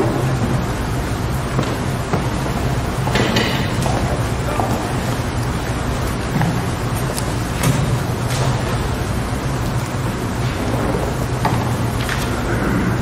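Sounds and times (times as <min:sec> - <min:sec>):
room noise with low hum: 0:00.0 - 0:13.0.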